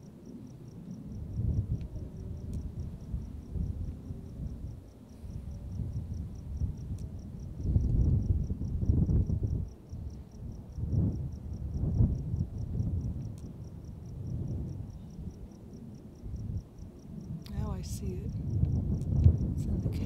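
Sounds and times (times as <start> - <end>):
low rumbling buffets on microphone: 0.0 - 20.0.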